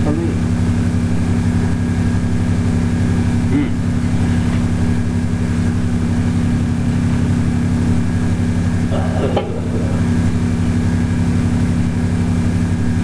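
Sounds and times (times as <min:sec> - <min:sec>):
pulsing mechanical hum: 0:00.0 - 0:13.0.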